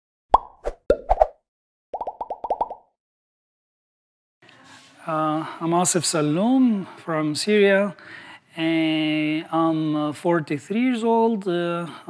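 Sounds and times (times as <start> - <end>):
cartoon plop sound effects: 2.0 - 2.9.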